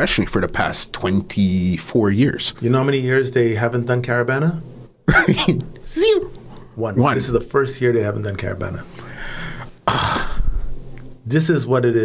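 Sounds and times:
man sighing heavily: 9.1 - 10.6.

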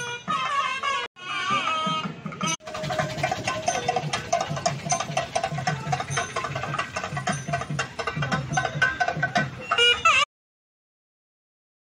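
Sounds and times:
fast even drum strokes: 1.6 - 10.2.

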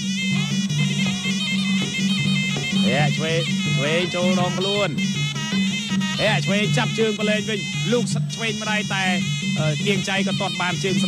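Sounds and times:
low two-note accompaniment: 0.0 - 11.0
shrill reed oboe melody: 0.0 - 11.0.

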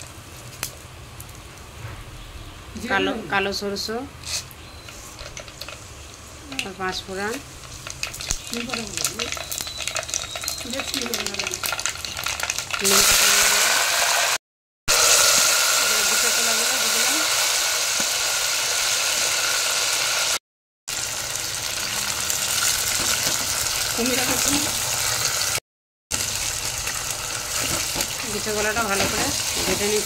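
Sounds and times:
hot oil crackling and spitting: 0.0 - 1.8, 4.2 - 30.0.

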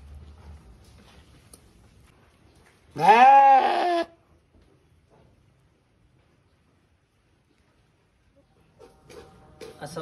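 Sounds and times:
sheep bleating: 3.0 - 4.2.

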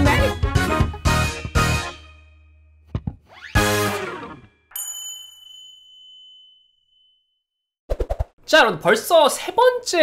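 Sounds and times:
high ding: 4.7 - 7.4.

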